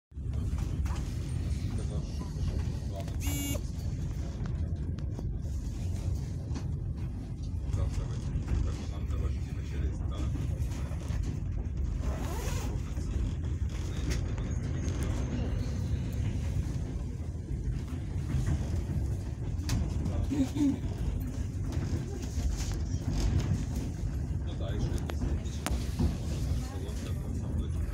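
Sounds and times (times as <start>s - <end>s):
train wheels rumbling on rails: 0.1s - 27.9s.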